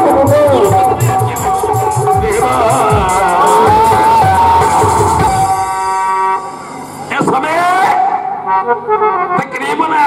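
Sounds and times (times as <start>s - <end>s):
harmonium holding a reedy note: 0.0s - 7.2s.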